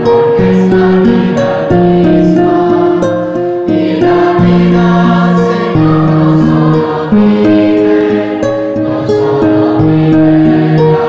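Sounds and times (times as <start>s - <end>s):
choir singing slow chant: 0.0s - 11.0s.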